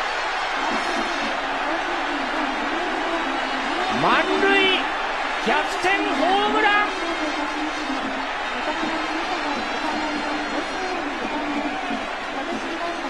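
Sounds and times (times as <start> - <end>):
stadium crowd cheering and chanting: 0.0 - 13.0.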